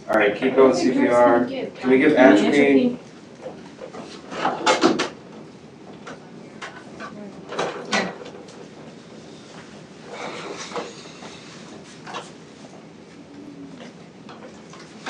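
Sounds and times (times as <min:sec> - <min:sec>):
equipment knocking and clattering: 0:03.4 - 0:11.0.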